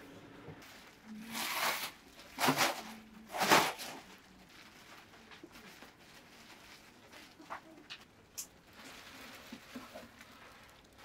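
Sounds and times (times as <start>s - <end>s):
bubble wrap rustling and crinkling: 0.6s - 11.0s.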